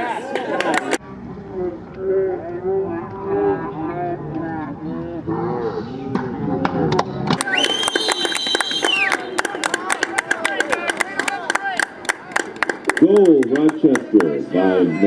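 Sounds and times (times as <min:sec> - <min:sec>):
high whistle: 0:07.4 - 0:09.4
sharp clapping: 0:07.4 - 0:14.3.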